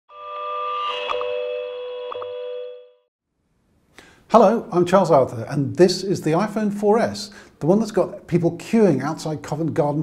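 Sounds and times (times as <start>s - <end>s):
held electronic chord: 0.1s - 3.0s.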